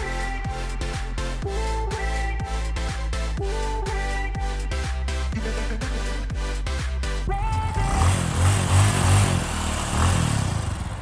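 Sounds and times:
music: 0:00.0 - 0:08.5
motorbike engine rumble: 0:07.4 - 0:11.0.

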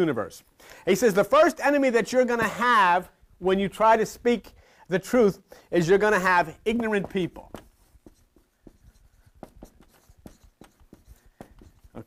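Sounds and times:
marker writing on whiteboard: 0:05.8 - 0:12.0.

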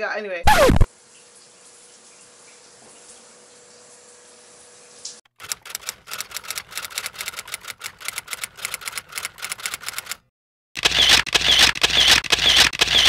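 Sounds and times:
typewriter keys clacking: 0:05.4 - 0:10.2, 0:10.8 - 0:13.0.

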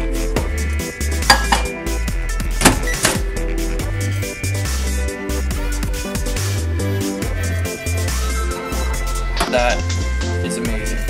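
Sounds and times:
electronic music with deep bass: 0:00.0 - 0:11.0.

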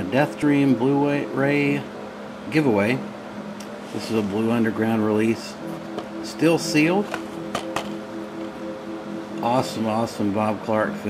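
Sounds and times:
low hum of held tones: 0:00.0 - 0:11.0.

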